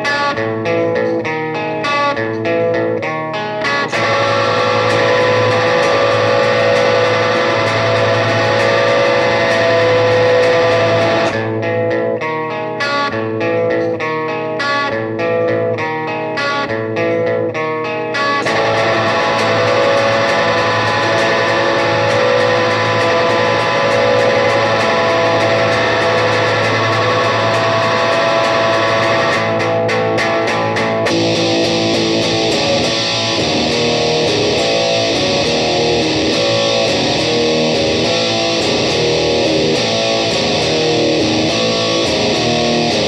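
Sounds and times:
electric guitar strumming a riff: 0:00.0 - 0:43.0.

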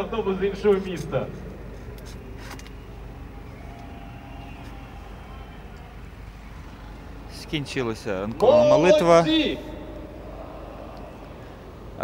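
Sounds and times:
low rumble: 0:09.6 - 0:12.0.

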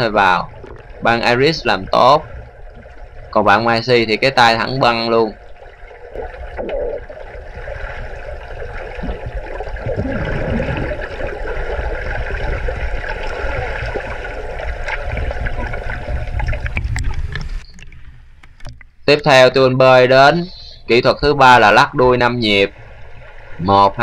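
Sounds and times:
low underwater rumble: 0:00.0 - 0:19.0
muffled water sloshing and bubbling: 0:00.0 - 0:24.0.

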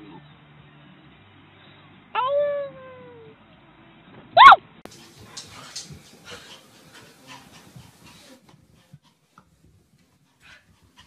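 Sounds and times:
dog whining howl: 0:04.4 - 0:04.6
dog yelping: 0:04.4 - 0:04.6.

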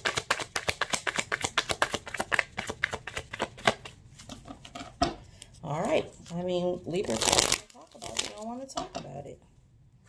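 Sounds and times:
cards being shuffled: 0:00.0 - 0:04.6, 0:07.0 - 0:08.5.

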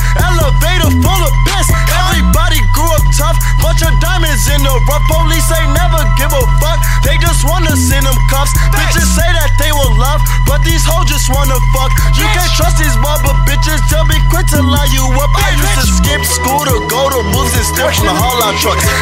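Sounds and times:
deep bass notes: 0:00.0 - 0:19.0
fast hi-hats: 0:00.0 - 0:19.0
rapping over a beat: 0:00.0 - 0:19.0.

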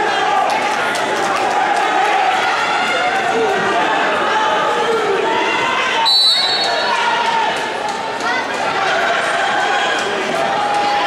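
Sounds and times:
crowd shouting and talking: 0:00.0 - 0:11.0
referee's whistle blast: 0:06.0 - 0:07.0.

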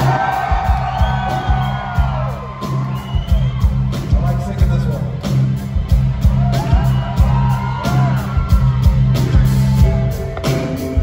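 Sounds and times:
audience whooping: 0:00.0 - 0:04.0, 0:06.2 - 0:10.1
heavy bass line: 0:00.0 - 0:11.0
live rock band playing: 0:00.0 - 0:11.0
steady drum beat: 0:00.0 - 0:11.0.

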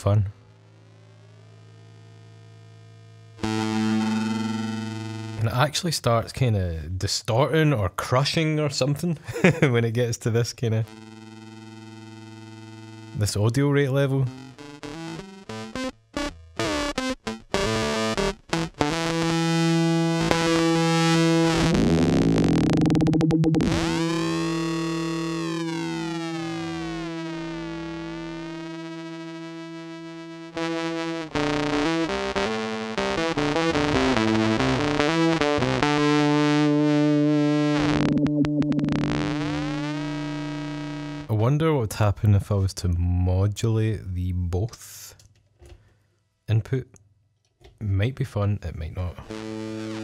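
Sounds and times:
distorted electric guitar: 0:00.0 - 0:05.7, 0:10.8 - 0:41.4, 0:49.0 - 0:50.0.

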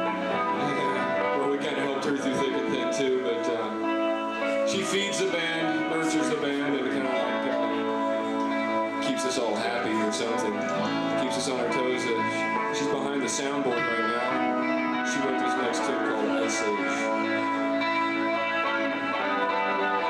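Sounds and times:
guitar playing: 0:00.0 - 0:20.0
person speaking: 0:00.5 - 0:03.8, 0:04.4 - 0:08.4, 0:09.0 - 0:14.5, 0:15.1 - 0:17.2.

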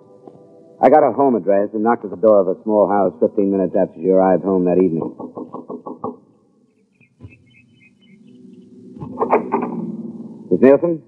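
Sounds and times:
knocking on a door: 0:05.1 - 0:06.2.

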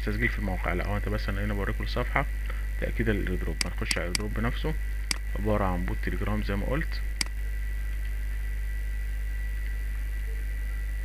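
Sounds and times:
low electrical hum: 0:00.0 - 0:11.0
computer mouse click: 0:03.6 - 0:04.3.

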